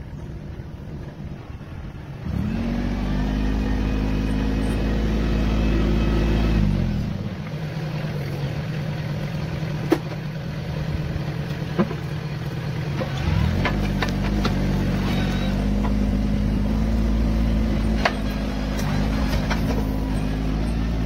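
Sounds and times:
tractor engine revving: 1.8 - 21.0
grader blade scraping soil: 10.9 - 21.0.

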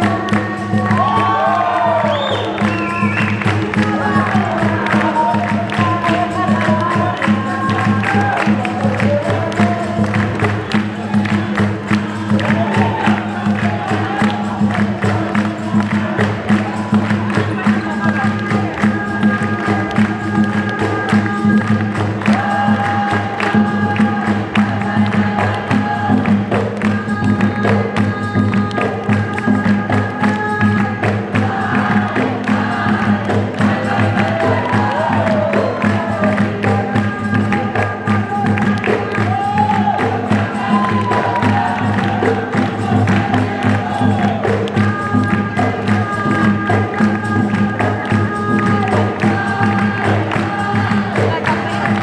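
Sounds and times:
berimbau-led percussion: 0.0 - 52.0
group singing call and response: 0.0 - 52.0
rhythmic hand-clapping: 0.0 - 52.0.

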